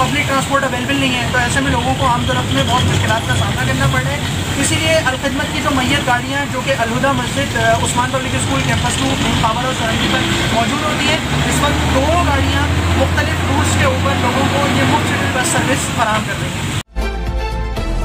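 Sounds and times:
passengers talking: 0.0s - 16.8s
bus engine drone: 0.0s - 16.9s.

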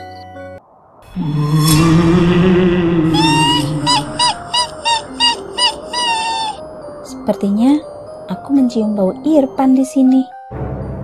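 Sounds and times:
background music: 0.0s - 11.0s
shrill ghostly laugh: 2.9s - 6.6s.

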